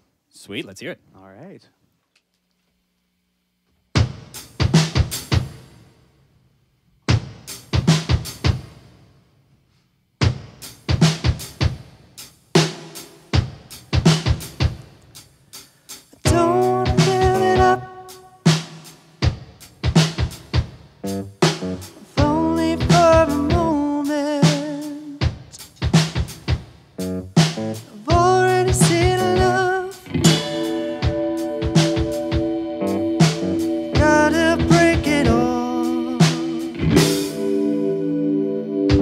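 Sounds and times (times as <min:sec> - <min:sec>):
drum kit playing: 0:03.9 - 0:06.0, 0:07.0 - 0:09.0, 0:10.2 - 0:38.3
cymbals ringing: 0:30.2 - 0:35.5.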